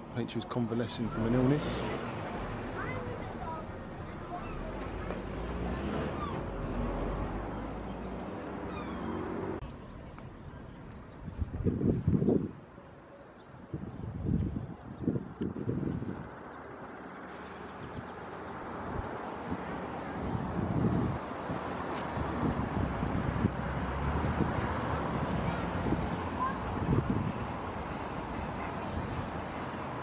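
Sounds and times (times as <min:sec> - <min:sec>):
steady outdoor hiss: 0:09.4 - 0:30.0
wind buffeting microphone: 0:09.6 - 0:30.0.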